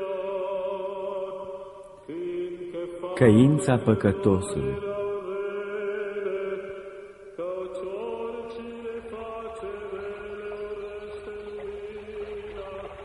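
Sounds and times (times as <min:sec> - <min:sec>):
slow chanting over a drone: 0:00.0 - 0:13.0.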